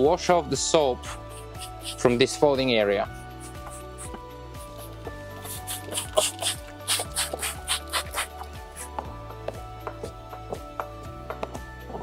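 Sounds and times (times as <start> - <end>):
background music: 0.0 - 12.0
spray bottle squirting: 1.1 - 2.0, 3.2 - 8.9.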